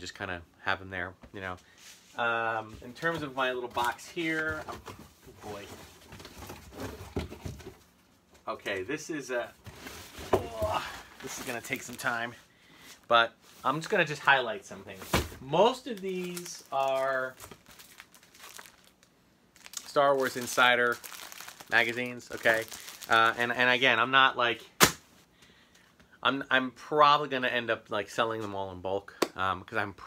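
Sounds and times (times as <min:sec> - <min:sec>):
glossy magazines rustling: 0:09.6 - 0:12.3, 0:15.0 - 0:23.5.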